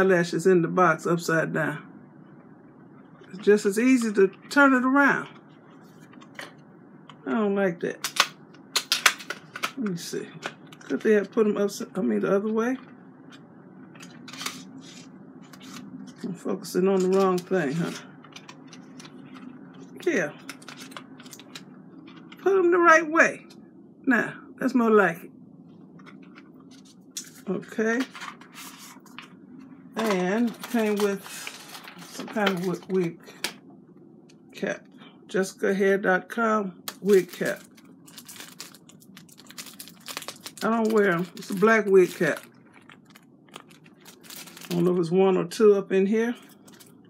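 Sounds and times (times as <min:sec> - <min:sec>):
plastic packaging clicks and scrapes: 0:08.0 - 0:09.8, 0:14.0 - 0:15.9, 0:20.4 - 0:22.4, 0:30.0 - 0:32.8, 0:36.9 - 0:44.9, 0:46.5 - 0:47.0.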